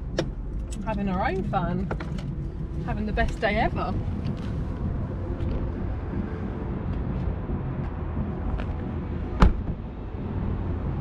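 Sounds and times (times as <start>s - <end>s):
low rumble of traffic: 0.0s - 11.0s
car door shutting: 9.4s - 9.8s.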